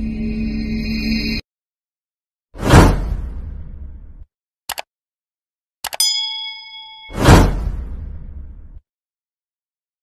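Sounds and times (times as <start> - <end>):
mouse clicks: 5.8 - 6.0
bell ding: 5.9 - 7.5.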